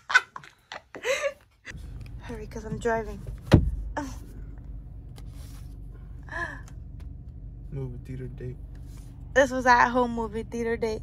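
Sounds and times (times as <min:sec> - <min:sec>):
car cabin rumble: 0:01.7 - 0:11.0.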